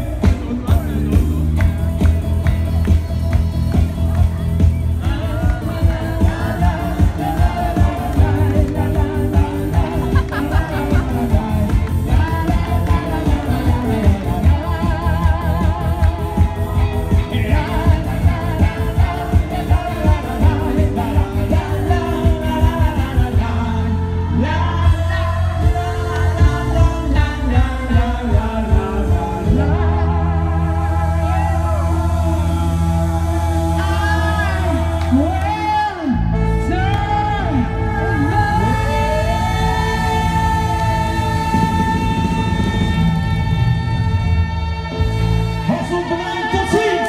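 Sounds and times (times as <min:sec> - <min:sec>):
pop band playing: 0:00.0 - 0:47.0.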